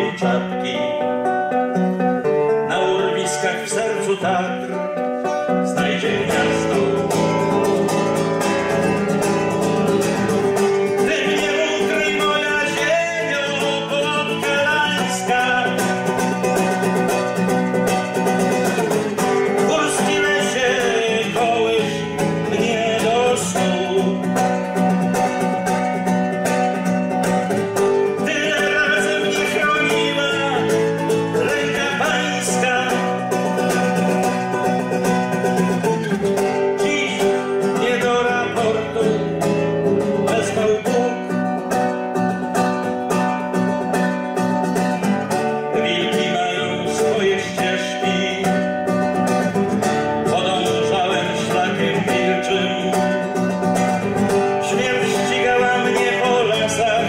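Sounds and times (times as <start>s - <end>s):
fingerstyle classical guitar: 0.0s - 57.0s.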